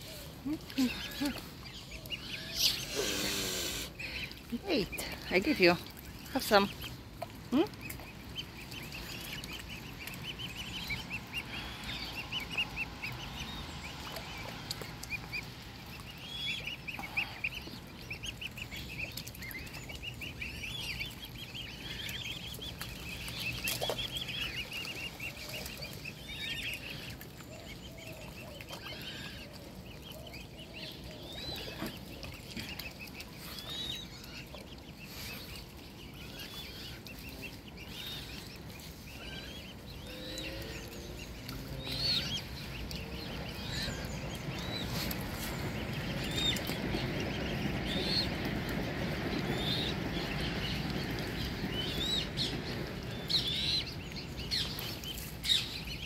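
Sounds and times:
cygnets peeping: 0.0s - 56.0s.

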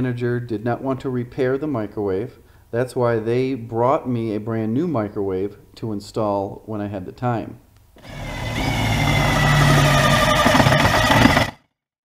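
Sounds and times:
power driver motor whine: 8.0s - 11.6s.

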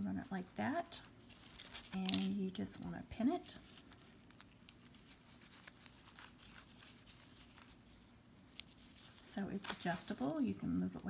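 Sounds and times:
ribbon rustling: 0.1s - 11.0s.

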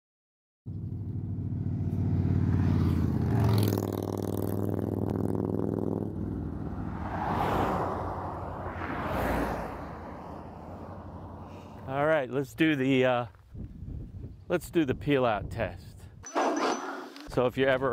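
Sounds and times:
vehicles passing on road: 0.7s - 12.2s.

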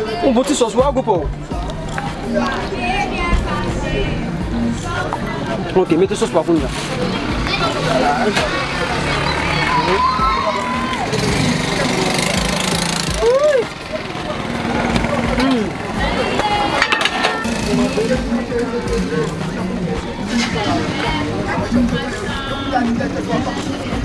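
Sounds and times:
people talking: 0.0s - 24.0s.

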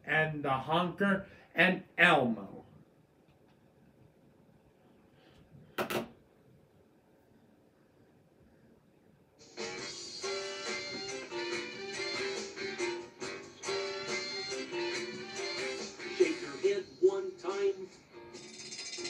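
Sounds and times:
children's song instrumental from tv: 9.4s - 19.0s.

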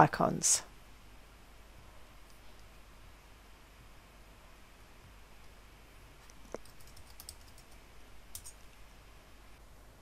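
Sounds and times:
keyboard and mouse clicks: 6.2s - 8.7s.

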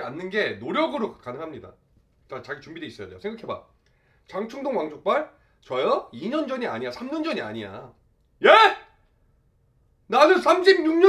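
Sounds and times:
man's questioning exclamation: 8.4s - 8.9s.

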